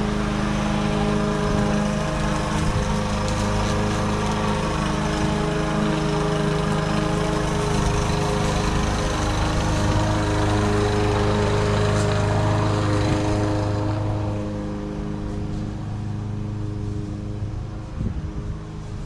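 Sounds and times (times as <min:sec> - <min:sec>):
lawn mower engine running: 0:00.0 - 0:19.0.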